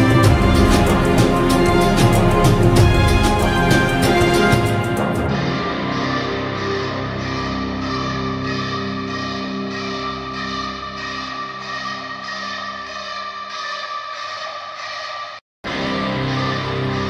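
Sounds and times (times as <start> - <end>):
background music with held tones: 0.0 - 12.4.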